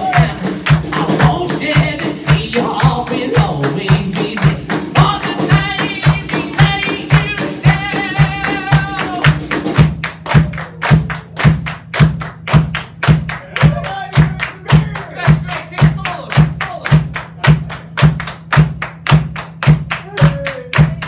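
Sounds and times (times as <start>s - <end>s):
drum kit playing a steady beat: 0.0s - 21.0s
people clapping along: 0.0s - 21.0s
short shouts or sung notes: 20.0s - 21.0s.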